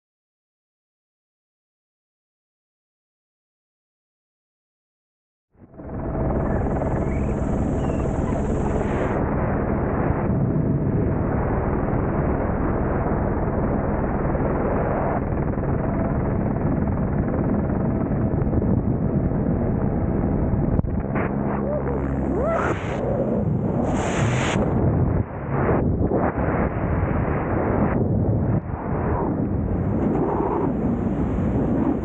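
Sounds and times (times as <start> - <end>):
helicopter turbine and rotor: 5.6 - 32.0
wind rushing past microphone: 14.4 - 32.0.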